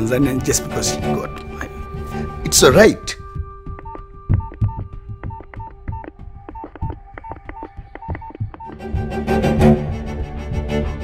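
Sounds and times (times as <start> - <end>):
soft background music: 0.0 - 11.0
phone keypad clicks and beeps: 3.8 - 8.7.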